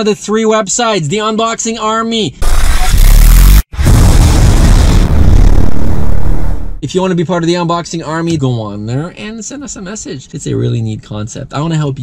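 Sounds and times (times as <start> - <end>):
rushing whoosh with low rumble: 3.2 - 6.8.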